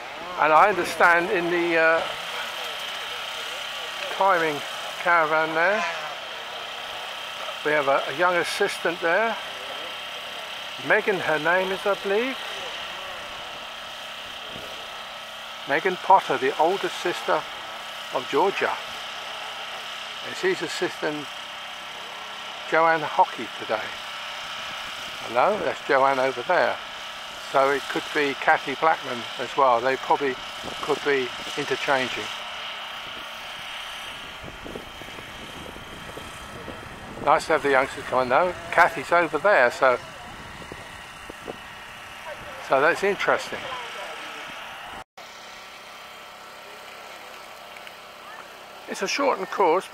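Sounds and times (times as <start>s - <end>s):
distant motorcycle engines buzzing: 0.0s - 49.9s.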